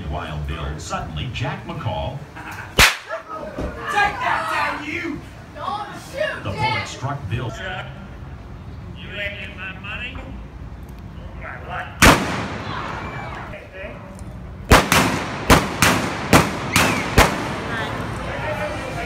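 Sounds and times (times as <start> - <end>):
blank gunshots with echo: 12.0 - 12.9, 14.7 - 17.9.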